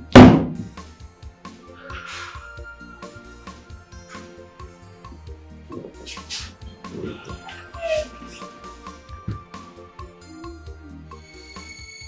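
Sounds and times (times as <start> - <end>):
dramatic film music with soft beat: 0.0 - 12.0.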